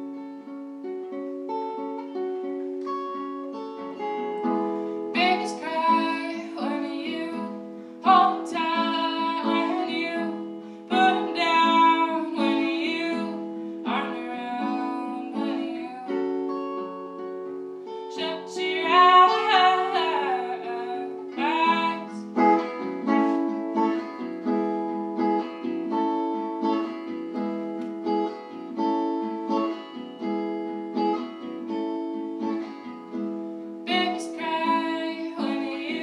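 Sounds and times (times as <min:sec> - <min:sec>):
picked guitar: 0:00.0 - 0:36.0
woman singing: 0:05.1 - 0:17.1, 0:18.1 - 0:23.5, 0:33.8 - 0:36.0.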